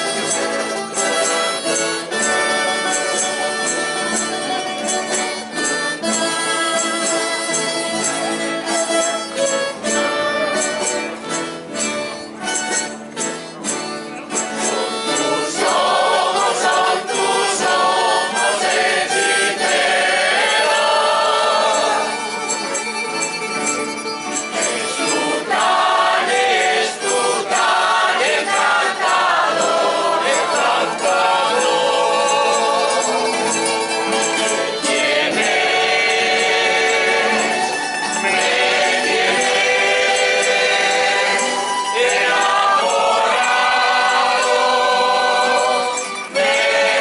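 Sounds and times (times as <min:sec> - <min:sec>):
accordion playing folk tune: 0:00.0 - 0:47.0
light percussive ticks: 0:00.0 - 0:47.0
strummed guitars: 0:00.0 - 0:47.0
men singing together: 0:14.7 - 0:22.3, 0:24.5 - 0:47.0.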